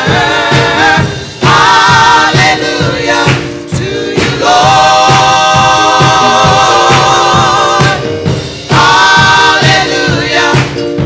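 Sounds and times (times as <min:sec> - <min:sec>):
gospel choir singing: 0:00.0 - 0:11.0
steady low beat: 0:00.0 - 0:11.0.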